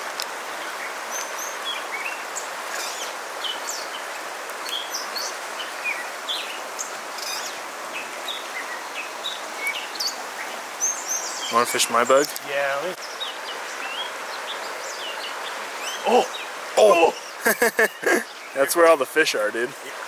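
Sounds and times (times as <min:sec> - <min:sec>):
river rushing over riffles: 0:00.0 - 0:20.0
bird chirps and calls: 0:04.6 - 0:18.7.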